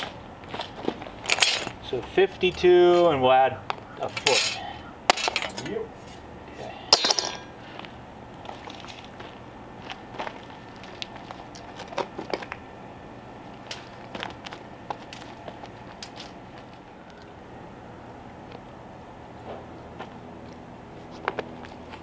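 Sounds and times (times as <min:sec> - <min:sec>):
metal straightedge clattering: 0:01.3 - 0:01.8, 0:04.1 - 0:05.8, 0:06.9 - 0:07.4.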